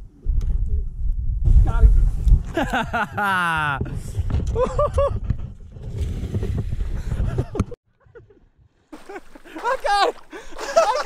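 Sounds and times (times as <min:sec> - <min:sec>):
wind buffeting microphone: 0:00.0 - 0:07.8
scuffling: 0:09.0 - 0:11.0.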